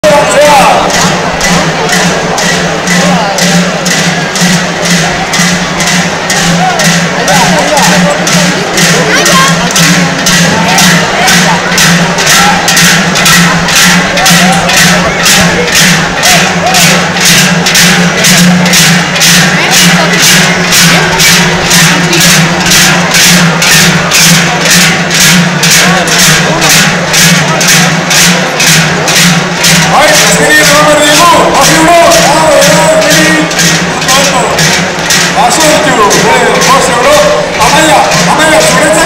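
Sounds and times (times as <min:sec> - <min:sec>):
crowd chatter: 0:00.0 - 0:39.0
large cowbells clanging: 0:00.0 - 0:39.0.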